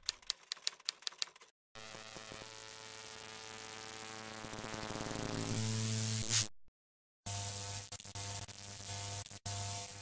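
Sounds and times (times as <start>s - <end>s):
steady electronic buzz: 1.8s - 6.5s, 7.3s - 10.0s.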